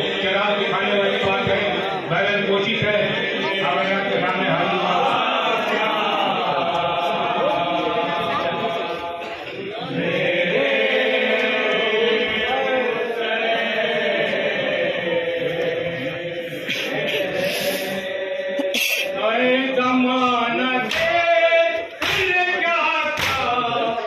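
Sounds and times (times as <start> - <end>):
men chanting together: 0.0 - 24.0.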